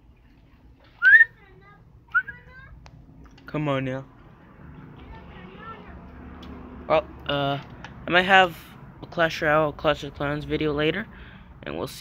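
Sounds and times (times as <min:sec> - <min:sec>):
person whistling: 0:01.0 - 0:01.3.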